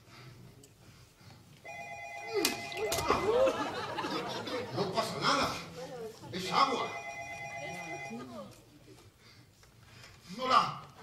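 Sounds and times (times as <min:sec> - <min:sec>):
telephone ringing: 0:01.6 - 0:03.9, 0:06.6 - 0:08.4.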